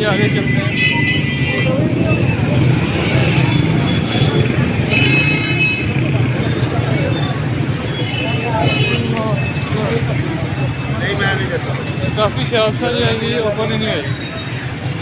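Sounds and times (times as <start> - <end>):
people talking: 0.0 - 5.0, 6.0 - 15.0
motorcycle engines running: 0.0 - 15.0.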